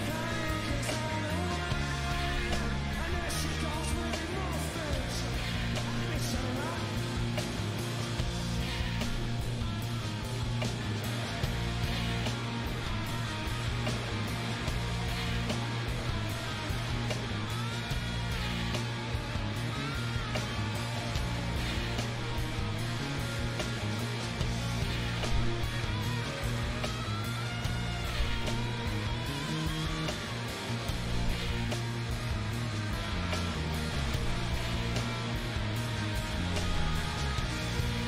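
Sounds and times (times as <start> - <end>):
bass: 0.0 - 38.0
drums: 0.0 - 38.0
electric guitar: 0.0 - 38.0
keyboards: 0.0 - 38.0
sliding guitar notes: 0.0 - 38.0.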